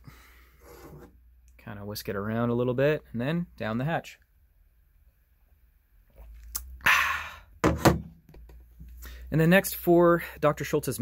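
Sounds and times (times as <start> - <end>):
sharp breathy exhale: 6.8 - 7.6.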